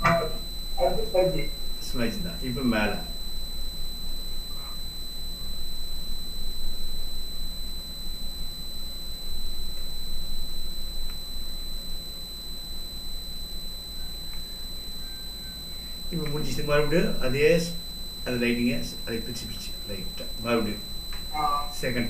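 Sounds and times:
low electrical hum: 0.0s - 22.0s
thin high-pitched steady tones: 0.0s - 22.0s.

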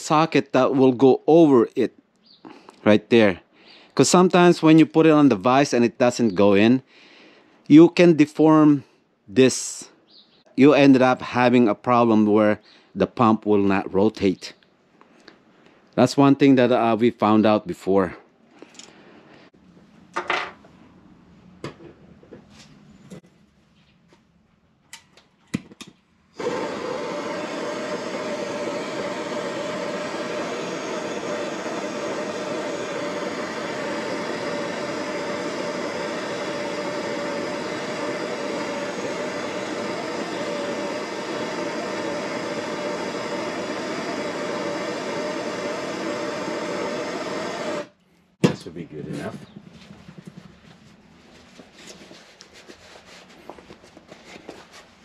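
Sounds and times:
blowtorch clicks: 24.9s - 47.9s
blowtorch flame hissing: 26.3s - 48.0s.

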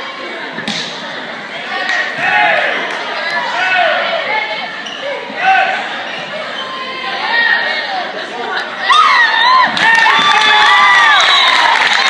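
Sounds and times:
crowd voices echoing in hall: 0.0s - 12.0s.

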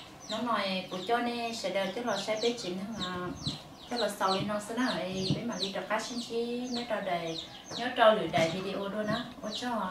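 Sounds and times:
chickens calling: 0.0s - 9.9s
woman talking: 0.3s - 9.9s.

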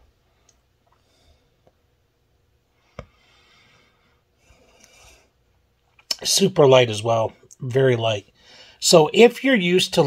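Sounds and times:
faint breathing: 2.7s - 5.4s, 8.3s - 8.8s.

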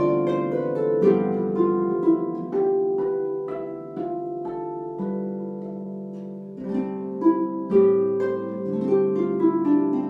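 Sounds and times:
solo harp playing: 0.0s - 10.0s.

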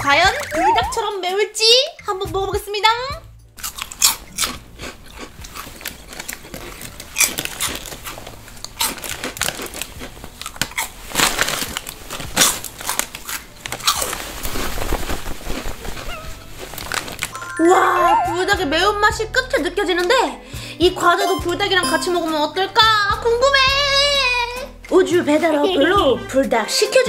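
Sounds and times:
crunchy snack chewing: 3.6s - 14.7s.

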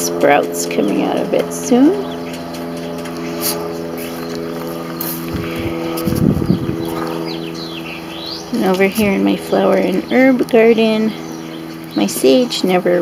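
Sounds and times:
mechanical motor hum: 0.0s - 13.0s.

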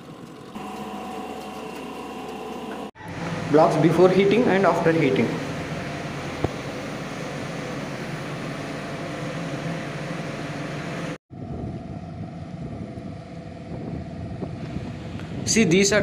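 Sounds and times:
factory machinery drone: 0.0s - 16.0s
wind rumbling on microphone: 11.3s - 16.0s.

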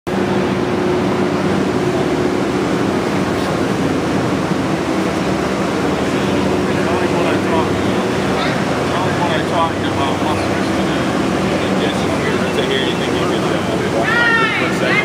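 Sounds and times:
ventilation fans humming: 0.1s - 15.0s
voices murmuring: 1.8s - 15.0s.

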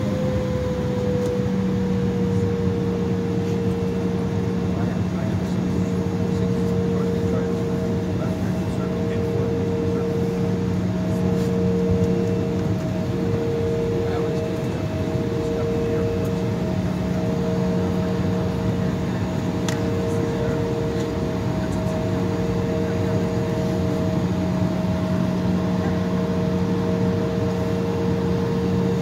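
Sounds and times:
jet engines humming in cabin: 0.0s - 29.0s.

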